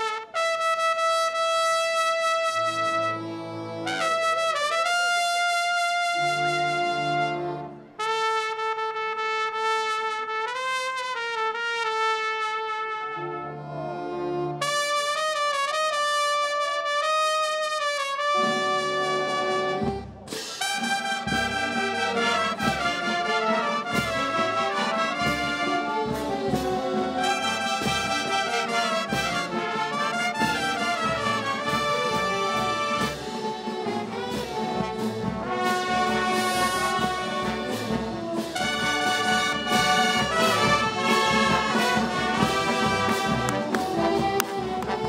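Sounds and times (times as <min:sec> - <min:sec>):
brass band playing: 0:00.0 - 0:45.0.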